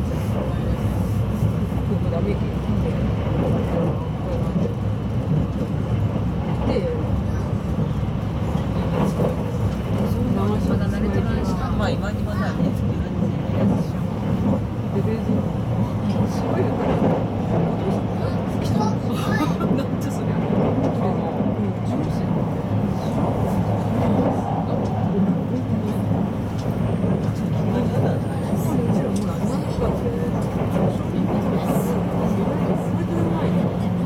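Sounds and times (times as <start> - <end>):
passengers chattering: 0.0 - 34.0
train wheels rumbling on rail: 0.0 - 34.0.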